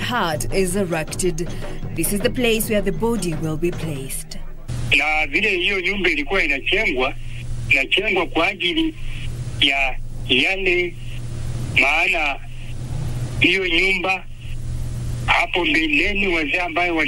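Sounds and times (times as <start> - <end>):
low hum: 0.0 - 17.0
man speaking: 4.9 - 11.2, 11.8 - 12.7, 13.4 - 14.3, 15.3 - 17.0.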